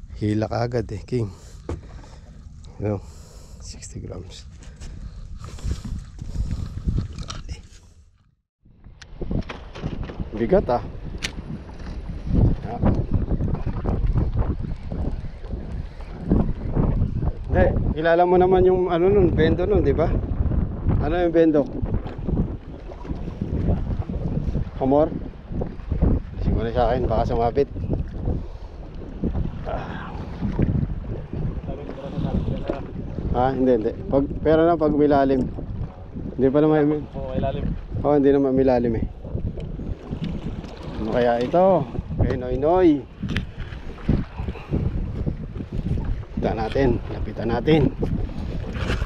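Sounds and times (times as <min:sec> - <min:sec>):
wind buffeting microphone: 0:00.0 - 0:07.7, 0:08.6 - 0:49.0
choppy water washing: 0:09.1 - 0:49.0.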